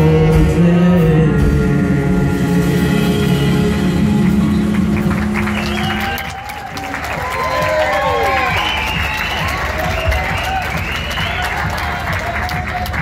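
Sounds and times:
band with horns playing chord: 0.0 - 6.9
audience applause and cheering: 3.2 - 13.0.

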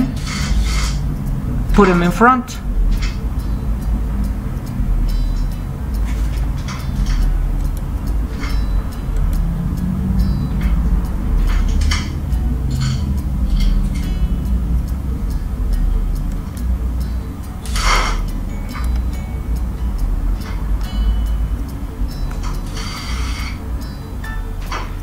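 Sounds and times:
steady low background noise: 0.0 - 25.0.

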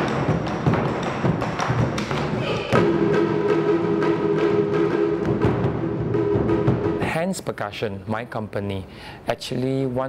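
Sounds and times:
barrel drums struck with sticks: 0.0 - 7.2.

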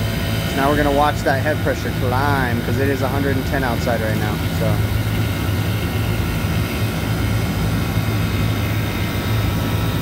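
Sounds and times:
compressor humming: 0.0 - 10.0
fans rushing air: 0.0 - 10.0.

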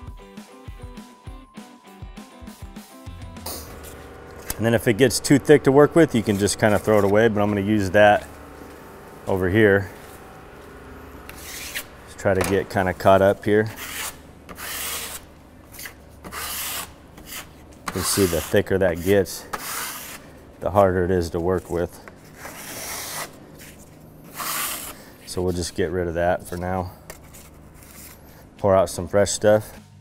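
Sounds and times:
putty knife scraping concrete: 3.5 - 8.2, 11.3 - 20.3, 22.3 - 25.6
steel knife scraping concrete: 11.3 - 11.9, 12.8 - 20.3.

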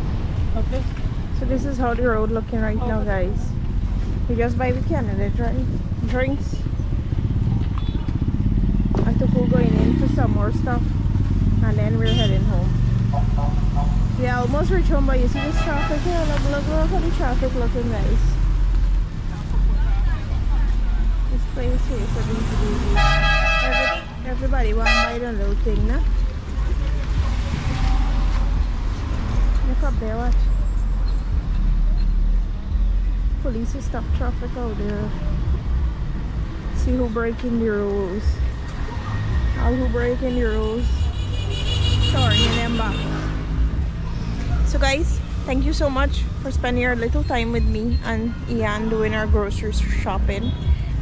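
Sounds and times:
vehicle engine rumbling: 0.0 - 51.0.

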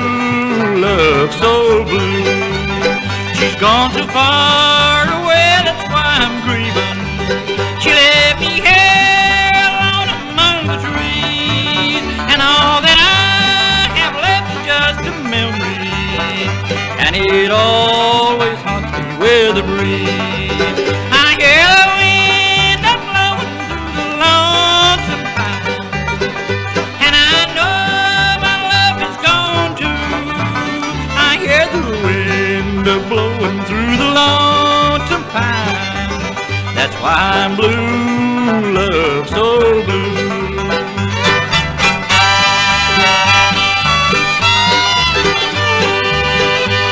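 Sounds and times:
alternating bass: 0.0 - 46.9
banjo: 0.0 - 46.9
guitar: 0.0 - 46.9
sliding fiddle lines: 41.0 - 46.9.

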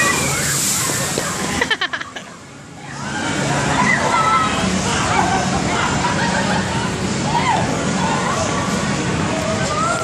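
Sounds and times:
water spray rushing down: 0.0 - 1.8.

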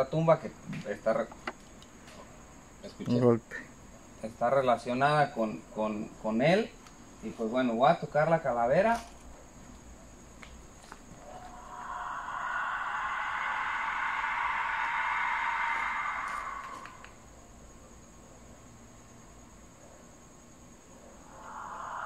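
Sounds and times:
clay skull whistle shrieking: 11.2 - 17.4, 21.2 - 22.0.

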